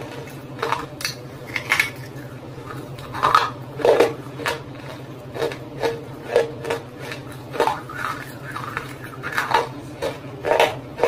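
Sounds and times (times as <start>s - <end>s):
chewing crunchy clay: 0.0s - 11.0s.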